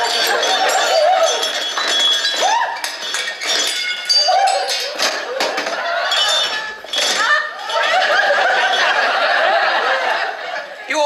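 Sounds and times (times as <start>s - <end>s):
people laughing: 0.0s - 1.6s, 4.3s - 11.0s
crockery clinking: 0.0s - 10.1s.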